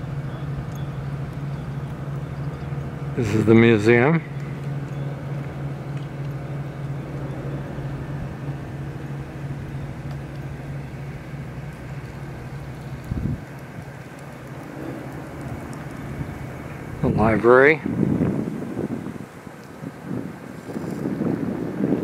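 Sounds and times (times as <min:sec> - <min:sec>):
low mechanical hum: 0:00.0 - 0:22.0
outdoor background noise: 0:00.0 - 0:22.0.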